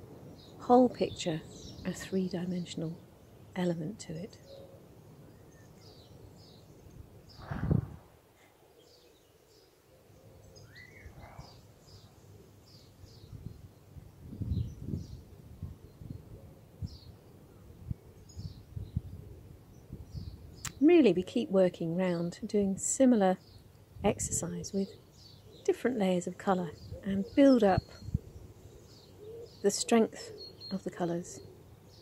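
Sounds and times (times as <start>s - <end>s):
small birds chirping: 0.2s - 32.0s.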